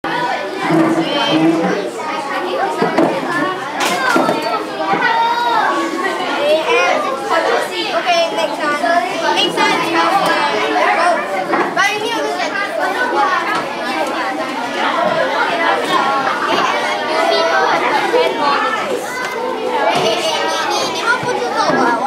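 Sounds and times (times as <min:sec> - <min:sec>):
children chattering: 0:00.0 - 0:22.0.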